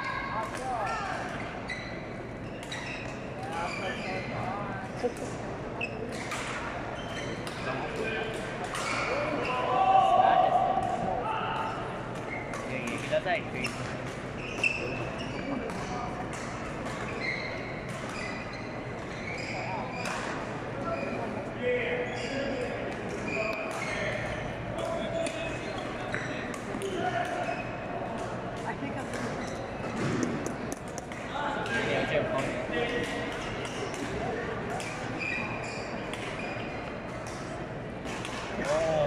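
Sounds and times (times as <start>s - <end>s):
murmur of spectators talking: 0.0s - 39.0s
shoes squeaking on sports floor: 0.8s - 4.5s, 5.8s - 6.3s, 6.9s - 8.1s, 12.2s - 13.0s, 13.6s - 21.4s, 22.0s - 22.6s, 23.2s - 27.9s, 29.1s - 30.0s, 34.8s - 37.5s.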